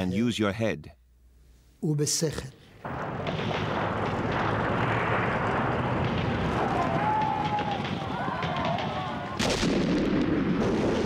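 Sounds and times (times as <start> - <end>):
rumble: 2.8 - 8.5
gunfire crackling: 2.8 - 11.0
loud explosion: 2.8 - 11.0.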